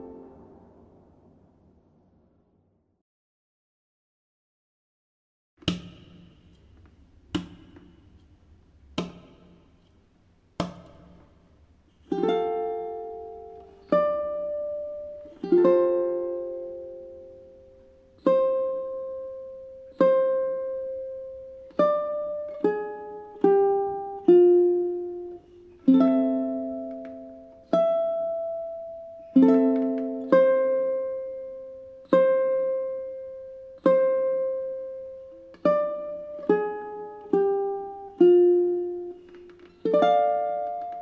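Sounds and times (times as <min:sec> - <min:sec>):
fingerpicked ukulele: 0:00.0 - 0:01.0, 0:05.6 - 0:41.0.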